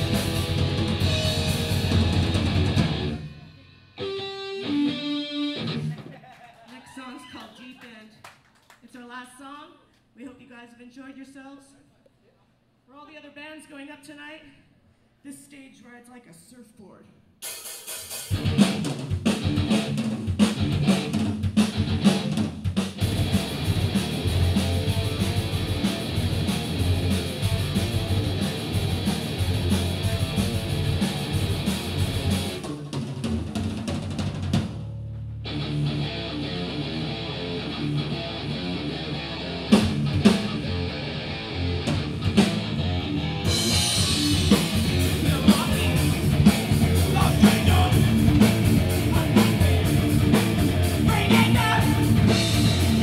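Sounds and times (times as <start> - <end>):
live metal band playing: 0.0 - 6.0, 18.0 - 53.0.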